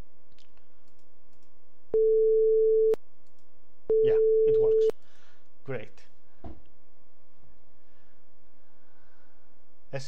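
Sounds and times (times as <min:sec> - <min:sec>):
click: 0:00.3 - 0:01.5, 0:03.2 - 0:03.5.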